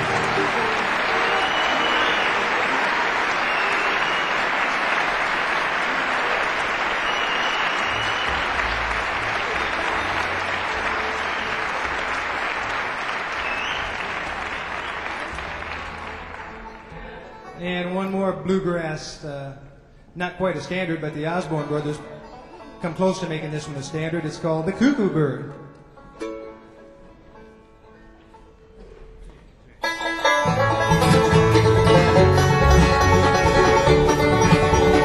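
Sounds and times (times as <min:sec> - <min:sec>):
audience applauding: 0:00.0 - 0:17.2
short whistles: 0:01.3 - 0:02.4, 0:03.4 - 0:04.4, 0:07.0 - 0:08.6, 0:13.4 - 0:14.0.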